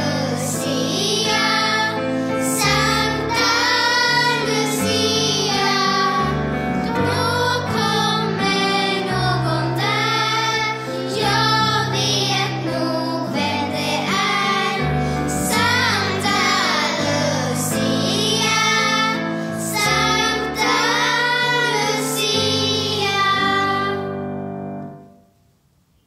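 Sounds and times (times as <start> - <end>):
children singing in unison: 0.0 - 24.4
held keyboard chords: 0.0 - 25.1.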